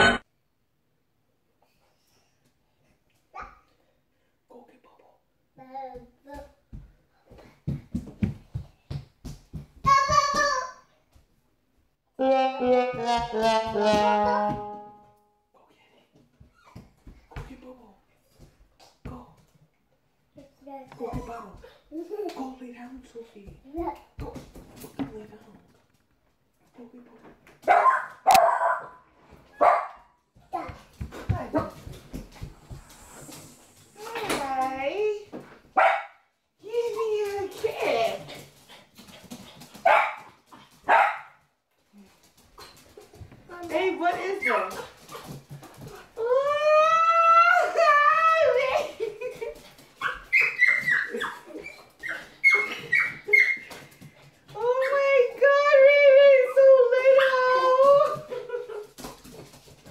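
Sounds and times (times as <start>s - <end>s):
dog barking and yelping: 27.7s - 30.1s, 40.9s - 41.3s, 50.0s - 53.8s.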